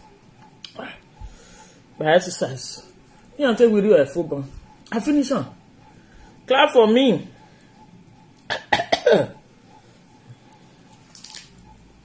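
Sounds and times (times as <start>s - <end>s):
woman coughing: 8.5s - 9.4s.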